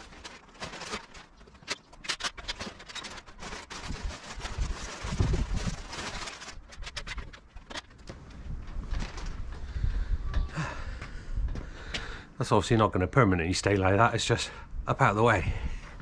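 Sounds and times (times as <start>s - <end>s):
plastic wrapping crinkling: 0.0s - 9.5s.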